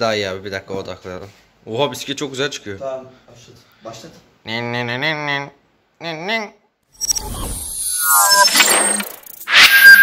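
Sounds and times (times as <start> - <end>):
glitchy static burst: 7.0 - 10.0.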